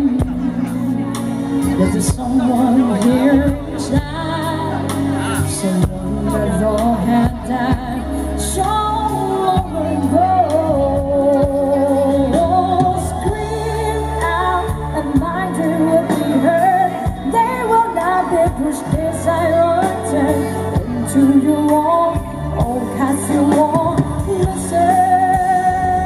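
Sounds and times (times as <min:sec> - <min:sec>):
band accompaniment: 0:00.0 - 0:26.0
woman singing into microphone: 0:00.0 - 0:26.0.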